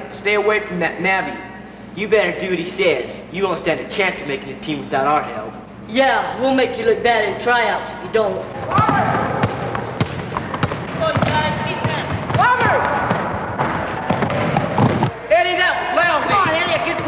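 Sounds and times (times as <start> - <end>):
boys shouting: 8.6 - 9.4, 11.0 - 13.2
basketball bouncing on wooden floor: 8.7 - 15.2.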